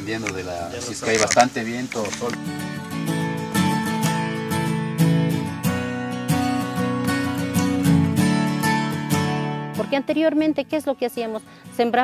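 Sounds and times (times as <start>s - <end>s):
strummed acoustic guitar chords: 2.4s - 10.1s
woman's voice: 9.8s - 12.0s.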